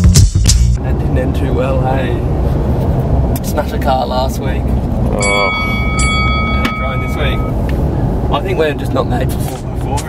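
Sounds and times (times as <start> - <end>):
truck engine rumble from cab: 0.8 - 10.0.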